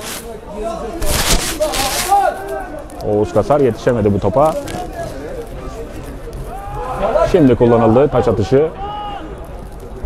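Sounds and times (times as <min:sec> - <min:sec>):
steady hiss: 0:00.0 - 0:02.6
distant shouting: 0:05.1 - 0:09.5.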